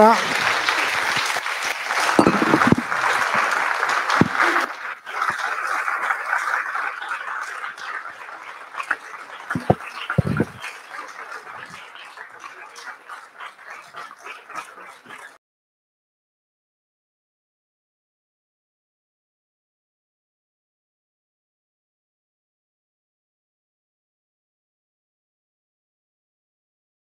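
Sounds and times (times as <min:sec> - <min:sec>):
audience applauding: 0:00.0 - 0:15.4.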